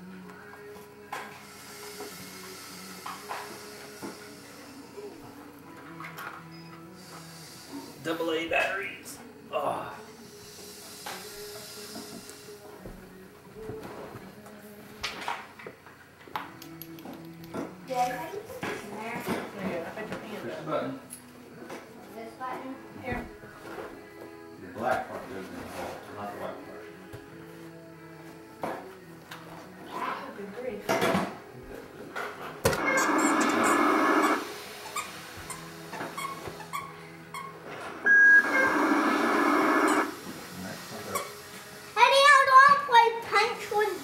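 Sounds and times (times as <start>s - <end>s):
faint background music: 0.0s - 44.0s.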